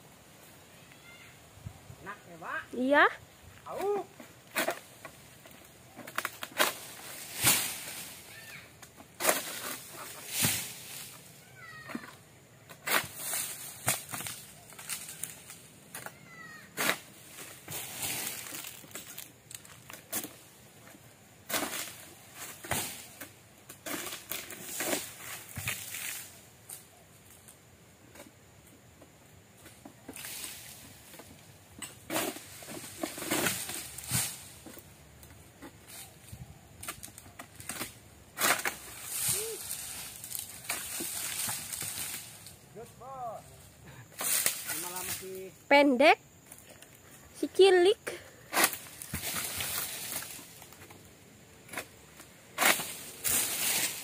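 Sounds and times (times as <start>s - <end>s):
palm fronds rustling: 0.0s - 54.0s.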